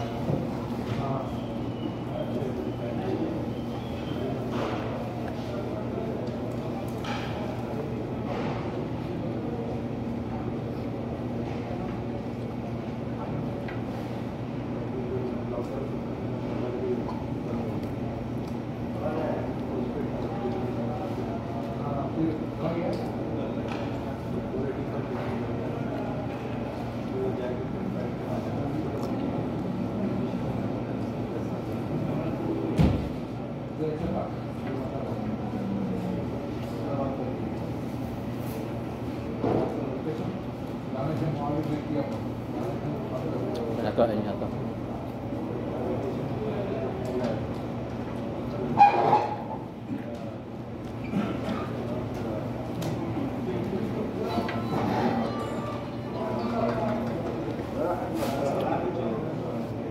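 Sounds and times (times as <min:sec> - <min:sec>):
voices talking: 0:00.0 - 0:08.5
room noise: 0:00.0 - 0:59.9.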